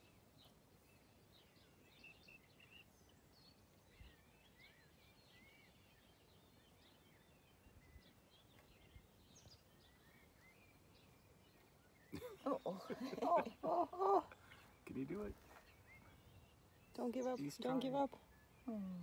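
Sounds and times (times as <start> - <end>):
distant birds chirping: 0.0 - 19.0.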